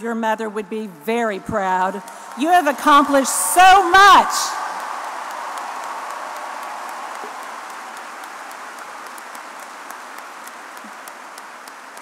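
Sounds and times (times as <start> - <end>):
crowd applauding: 1.6 - 12.0.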